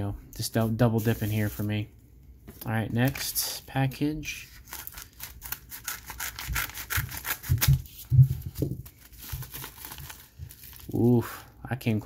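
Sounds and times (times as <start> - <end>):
plastic crinkling: 4.5 - 11.1
scissors snipping plastic: 4.7 - 7.9.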